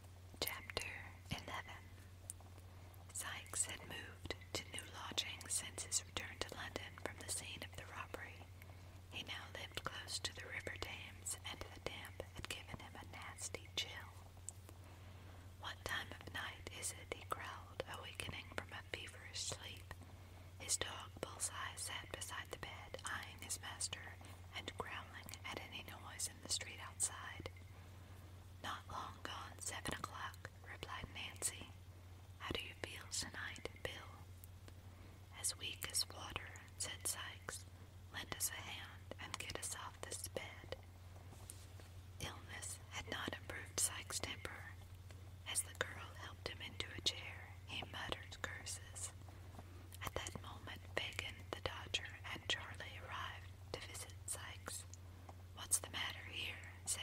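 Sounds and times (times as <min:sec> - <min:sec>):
steady low hum: 0:00.0 - 0:57.0
person whispering: 0:00.4 - 0:01.8, 0:03.1 - 0:08.4, 0:09.2 - 0:14.2, 0:15.6 - 0:19.9, 0:20.6 - 0:27.5, 0:28.6 - 0:31.7, 0:32.4 - 0:34.2, 0:35.4 - 0:37.6, 0:38.2 - 0:40.8, 0:42.2 - 0:44.8, 0:45.5 - 0:49.2, 0:50.0 - 0:54.9, 0:55.6 - 0:57.0.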